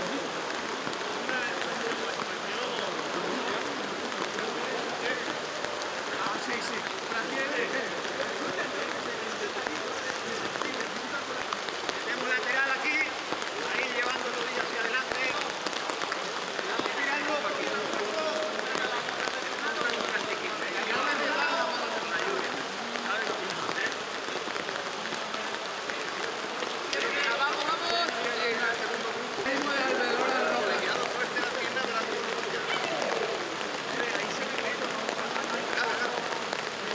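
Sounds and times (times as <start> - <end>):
steady rain falling: 0.0 - 36.9
players calling out: 26.0 - 36.9.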